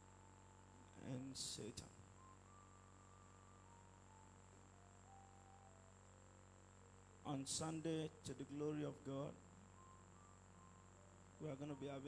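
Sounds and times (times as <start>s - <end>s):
faint high whine: 0.0s - 12.0s
faint sustained notes: 0.0s - 12.0s
low steady hum: 0.0s - 12.0s.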